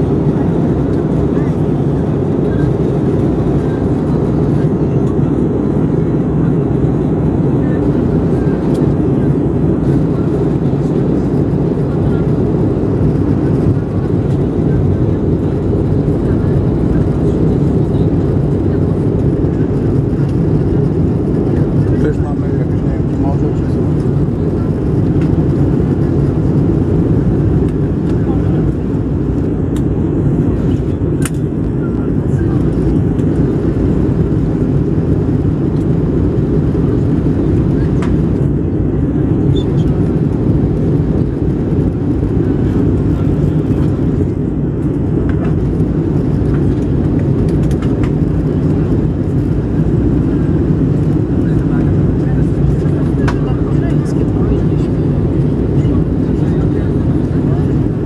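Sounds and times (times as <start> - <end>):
jet engine and airflow roar: 0.0 - 58.0.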